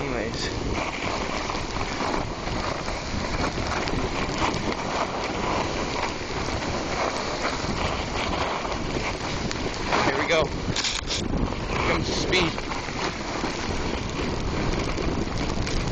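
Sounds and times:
wind buffeting microphone: 0.0s - 15.9s.

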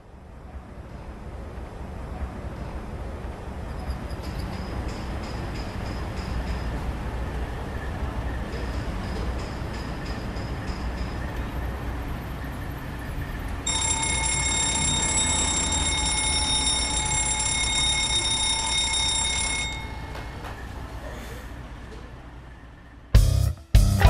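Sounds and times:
alarm clock bell ringing: 13.6s - 20.4s.

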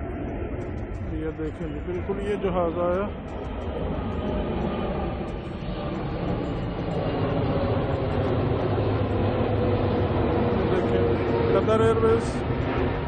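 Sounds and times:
jet airliner flying overhead: 0.0s - 13.0s.

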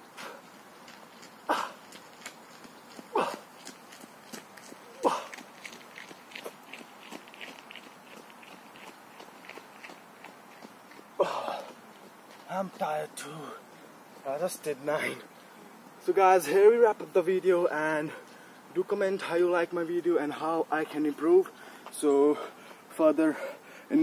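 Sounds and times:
man grunting exhalations: 3.1s - 3.4s, 5.0s - 5.3s, 11.2s - 11.7s.

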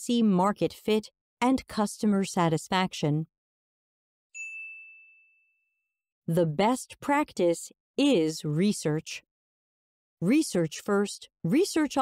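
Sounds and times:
bright chime ding: 4.4s - 5.6s.

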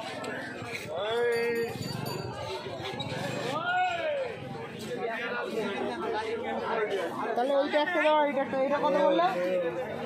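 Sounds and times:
people talking overlapping: 0.0s - 10.0s.

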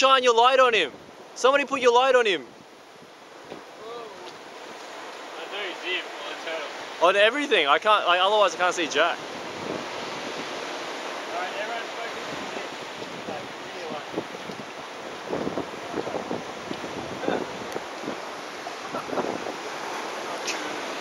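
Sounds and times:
surf washing on beach: 0.0s - 21.0s
wind on microphone: 9.2s - 11.2s, 12.0s - 21.0s.

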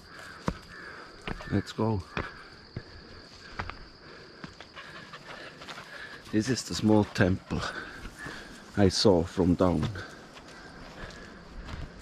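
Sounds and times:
footsteps on stone trail: 0.0s - 12.0s.

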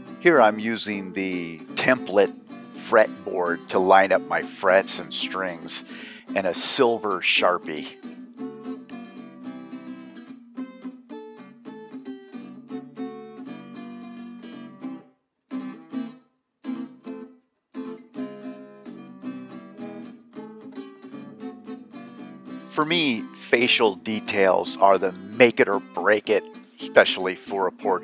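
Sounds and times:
acoustic guitar picked notes: 0.0s - 28.0s.

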